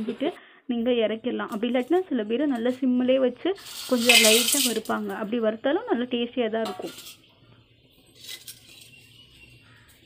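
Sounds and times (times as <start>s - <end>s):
spices rattling in metal pan: 3.6s - 5.2s, 6.6s - 7.3s, 8.1s - 9.1s.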